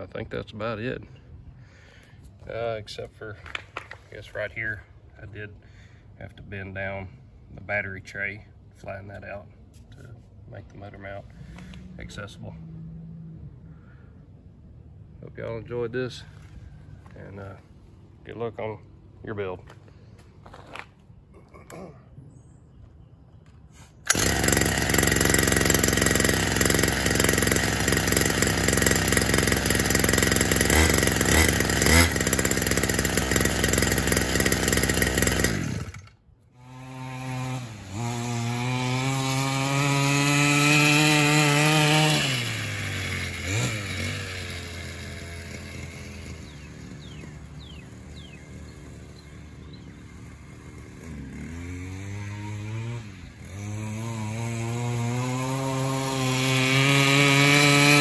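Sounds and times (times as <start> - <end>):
dirt bike engine revving: 24.0 - 58.0.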